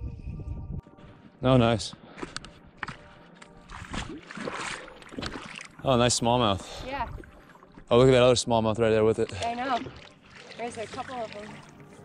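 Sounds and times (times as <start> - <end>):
shallow water splashing: 3.6 - 12.0.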